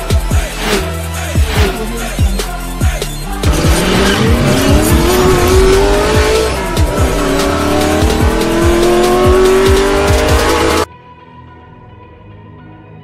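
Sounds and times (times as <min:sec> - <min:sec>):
electronic beat music: 0:00.0 - 0:10.9
car engine accelerating: 0:03.4 - 0:10.9.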